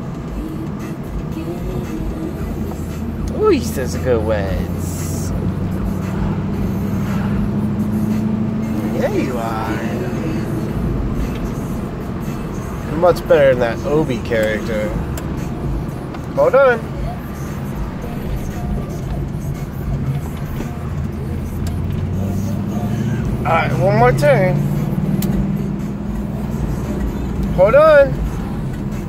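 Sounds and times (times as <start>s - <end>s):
car interior engine and road drone: 0.0s - 29.0s.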